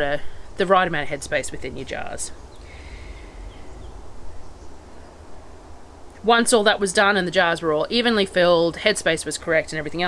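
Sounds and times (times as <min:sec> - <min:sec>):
low background rumble: 0:00.0 - 0:10.0
faint hiss: 0:00.1 - 0:07.5.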